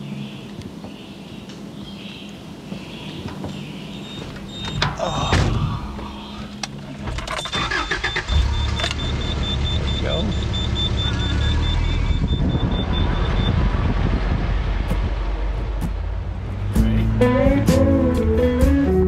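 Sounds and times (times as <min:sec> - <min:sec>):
low engine rumble: 0:02.7 - 0:19.0
car warning chime beeping: 0:03.9 - 0:05.0, 0:07.4 - 0:13.7.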